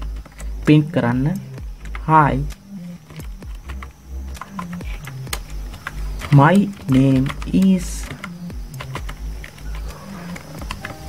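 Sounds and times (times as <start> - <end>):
faint background music: 0.0 - 11.0
keyboard keys clicking: 0.0 - 11.0.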